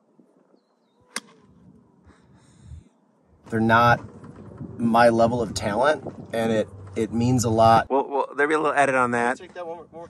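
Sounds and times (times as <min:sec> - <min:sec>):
golf club striking ball: 0:01.1 - 0:01.6.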